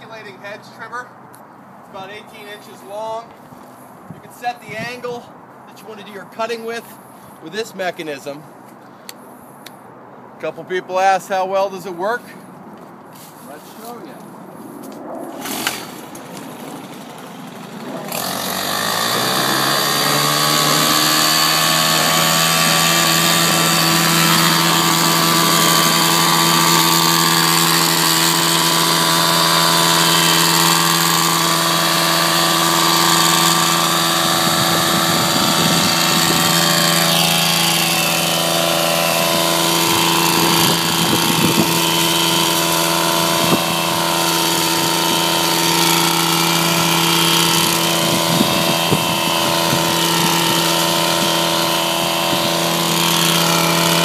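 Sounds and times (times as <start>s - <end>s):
foliage and stems being cut: 14.9s - 16.3s, 18.0s - 54.0s
hedge trimmer engine revving: 15.4s - 54.0s.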